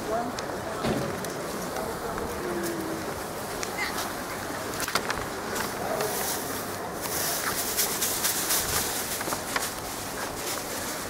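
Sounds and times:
steady background hiss: 0:00.0 - 0:11.0
sharp clicks and knocks: 0:00.4 - 0:01.8.

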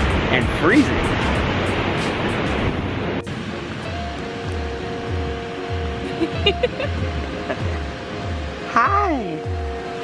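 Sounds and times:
wind noise: 0:00.0 - 0:07.4
music with held notes and low beat: 0:00.0 - 0:10.0
ocean surf: 0:00.0 - 0:10.0.

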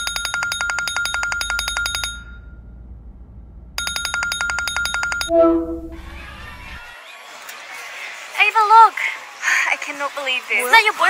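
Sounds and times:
smartphone ringtone trilling: 0:03.8 - 0:06.1.

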